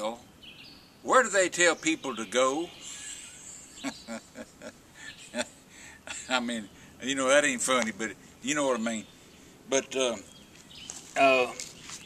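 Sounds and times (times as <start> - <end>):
man chuckling quietly: 2.9 - 6.4.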